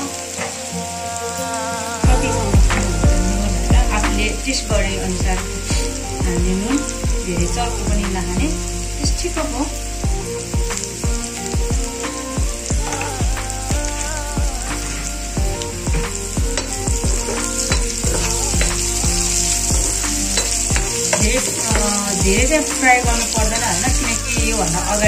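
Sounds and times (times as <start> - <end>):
vegetables sizzling in hot oil: 0.0 - 25.0
spoon and spatula stirring: 15.9 - 24.3.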